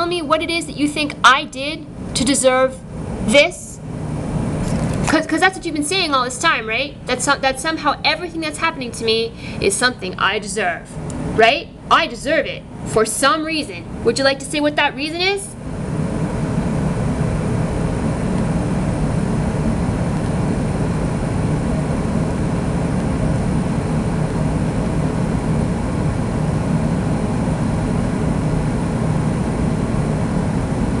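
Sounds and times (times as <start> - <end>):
machine running with low hum: 0.0 - 31.0.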